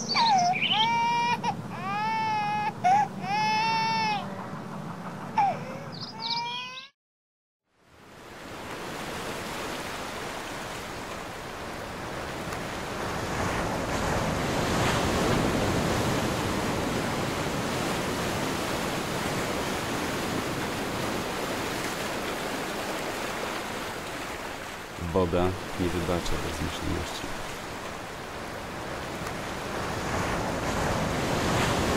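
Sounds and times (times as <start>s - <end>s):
sea waves rushing: 0.0s - 4.4s, 8.0s - 31.9s
baby crying: 0.2s - 4.3s, 5.4s - 7.0s.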